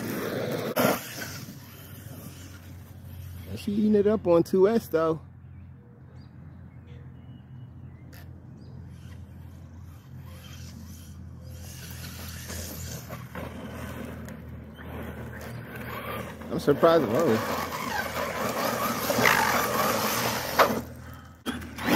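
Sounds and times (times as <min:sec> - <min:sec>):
electric toy truck motor: 0:00.7 - 0:03.5, 0:08.9 - 0:21.9
steady low hum: 0:05.2 - 0:21.8.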